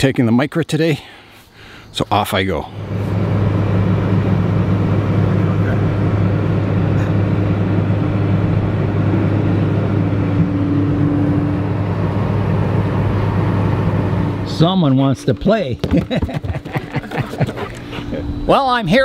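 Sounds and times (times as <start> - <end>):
road noise: 1.2 - 18.5
car engine drone: 2.4 - 18.9.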